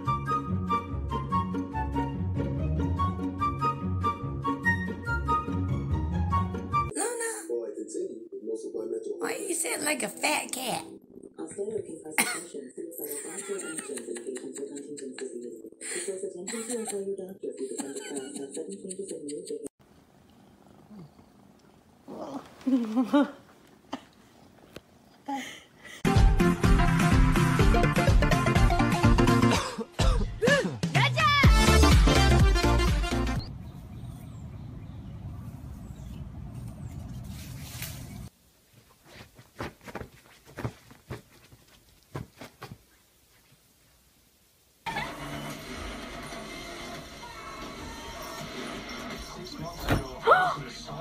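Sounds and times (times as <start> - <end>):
television soundtrack: 6.9 - 19.8, 44.9 - 51.0.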